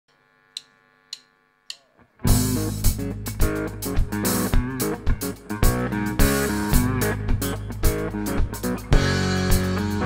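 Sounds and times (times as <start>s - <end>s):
drumstick clicks: 0.6s - 1.9s.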